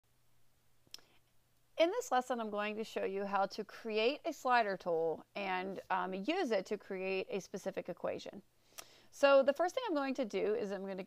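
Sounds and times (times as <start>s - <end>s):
faint electrical hum: 0.1s - 11.0s.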